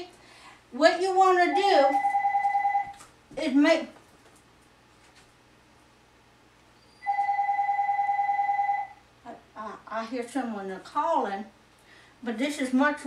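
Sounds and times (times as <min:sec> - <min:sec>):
telephone ringing: 0:01.4 - 0:03.0, 0:07.0 - 0:09.0.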